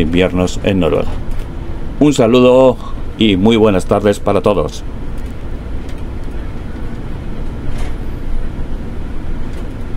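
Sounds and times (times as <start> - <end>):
bus engine and tyres rumbling: 0.0 - 9.9.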